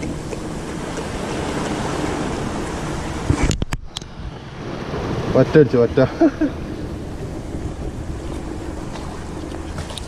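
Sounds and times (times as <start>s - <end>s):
surf washing among rocks: 0.0s - 10.0s.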